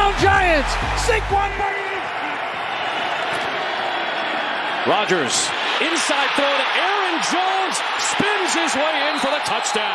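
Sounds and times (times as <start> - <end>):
stadium crowd noise: 0.0 - 9.9.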